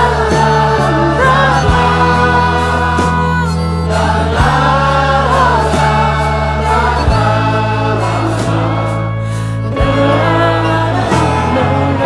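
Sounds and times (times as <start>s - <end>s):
choir singing together: 0.0s - 12.0s
held bass notes: 0.0s - 12.0s
roots band song: 0.0s - 12.0s.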